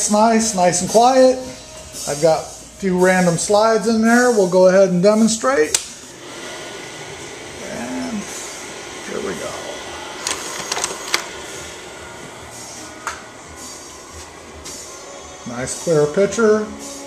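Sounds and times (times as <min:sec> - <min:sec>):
projector fan hum: 0:00.0 - 0:17.0.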